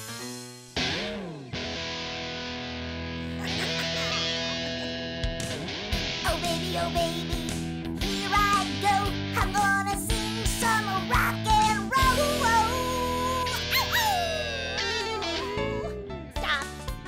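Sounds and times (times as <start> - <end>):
rock electric guitar: 0.0 - 17.0.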